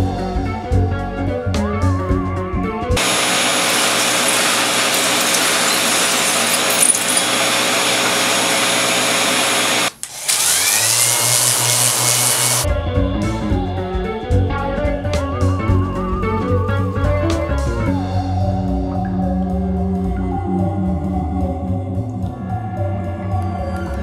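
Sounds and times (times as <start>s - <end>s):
music: 0.0s - 3.0s, 12.6s - 24.0s
power tool carving foam: 3.0s - 12.7s.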